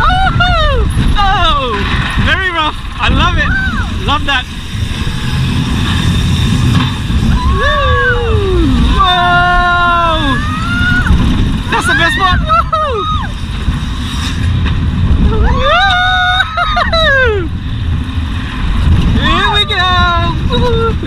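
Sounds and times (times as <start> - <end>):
riders whooping: 0.0 - 1.9, 6.0 - 13.8, 15.1 - 18.0
roller coaster rumbling on track: 0.0 - 21.0
wind on microphone: 0.0 - 21.0.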